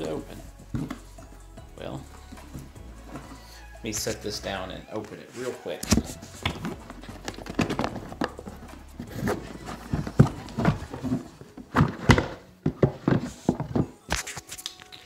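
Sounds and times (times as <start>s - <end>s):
cardboard box knocks and scraping: 5.9s - 14.0s.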